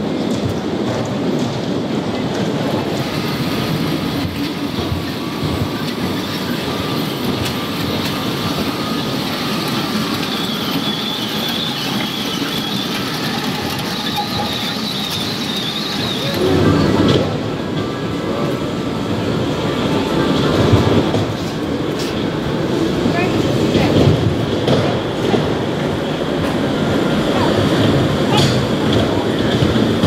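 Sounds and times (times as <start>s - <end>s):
wheels rumbling on steel track: 0.0s - 30.0s
high wheel squeal: 2.9s - 17.3s.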